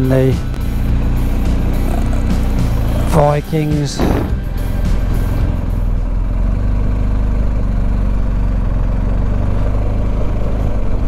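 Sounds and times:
motorcycle engine at low revs: 0.0s - 11.0s.

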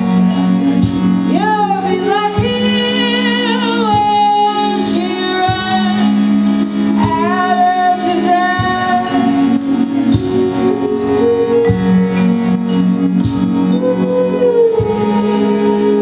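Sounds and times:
woman singing with vibrato: 1.2s - 16.0s.

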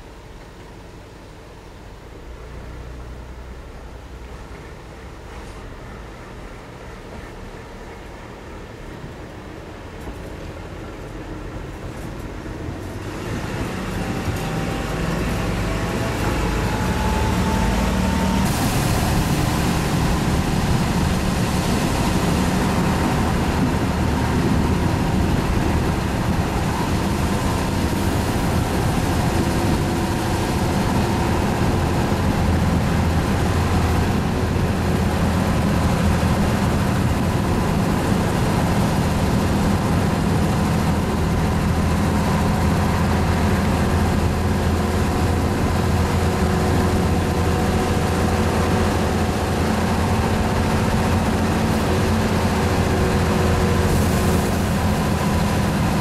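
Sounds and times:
diesel railbus engine drone: 0.0s - 56.0s
hiss: 18.2s - 22.8s, 53.8s - 55.2s.

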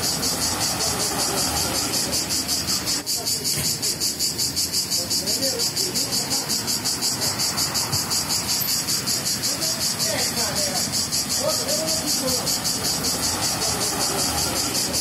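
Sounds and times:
cicada buzzing: 0.0s - 15.0s.

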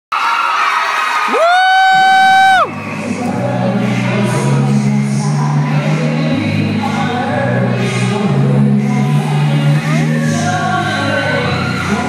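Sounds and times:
crowd cheering and screaming: 0.1s - 3.2s, 11.2s - 12.0s
person whooping: 1.3s - 2.7s.

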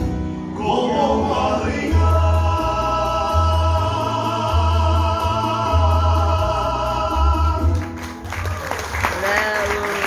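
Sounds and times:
keyboard accompaniment: 0.0s - 10.0s
man singing: 0.4s - 8.0s.

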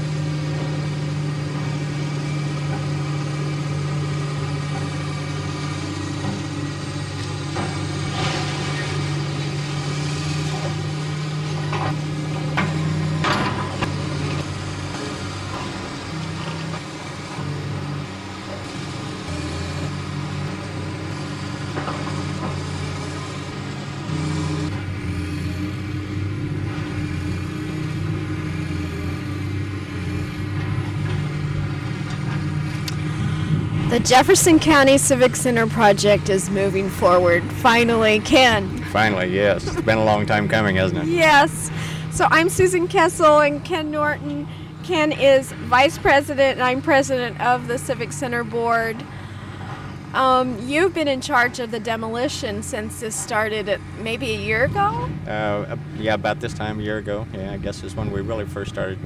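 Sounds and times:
excavator diesel engine running: 0.0s - 59.0s.

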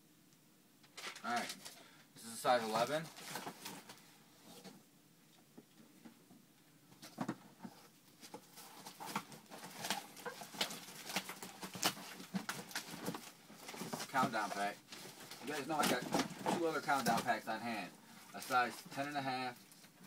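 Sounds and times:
cardboard boxes handled: 7.0s - 17.4s.

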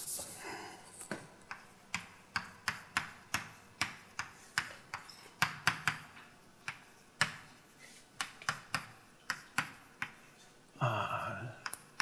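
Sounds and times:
chalk tapping on blackboard: 1.1s - 10.4s, 11.6s - 12.0s.

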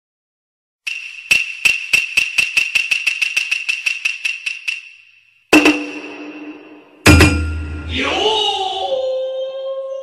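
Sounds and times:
high ringing percussion strikes: 0.9s - 8.1s.

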